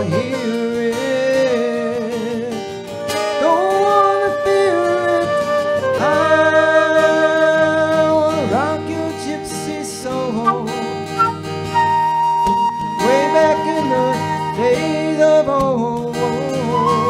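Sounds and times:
flute melody: 0:00.0 - 0:08.3, 0:10.4 - 0:15.5, 0:16.4 - 0:17.0
strummed acoustic guitar: 0:00.0 - 0:17.0.

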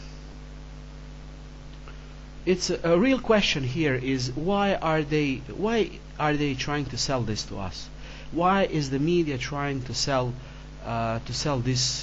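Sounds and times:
electrical mains hum: 0:00.0 - 0:12.0
low recording hiss: 0:00.0 - 0:12.0.

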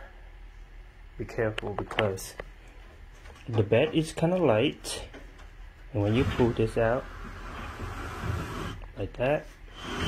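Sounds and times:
wooden bed frame sliding: 0:06.0 - 0:08.8, 0:09.7 - 0:10.0.

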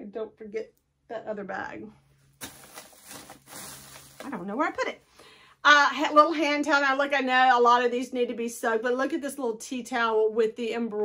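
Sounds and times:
soft scrapes and rustles: 0:02.1 - 0:04.8.

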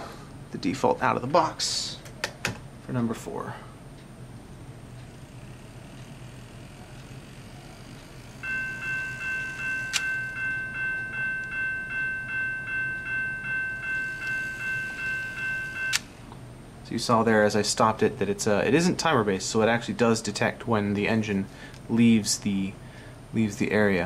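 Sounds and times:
electronic crossing bell dinging: 0:08.4 - 0:16.0.

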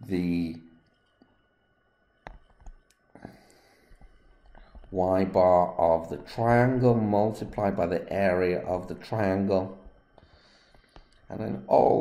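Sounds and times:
soft breathy hiss: 0:03.1 - 0:07.0, 0:10.2 - 0:12.0.

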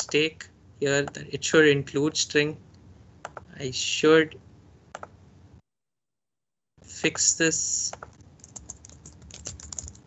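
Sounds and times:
computer keyboard typing: 0:03.3 - 0:03.5, 0:07.9 - 0:10.0.

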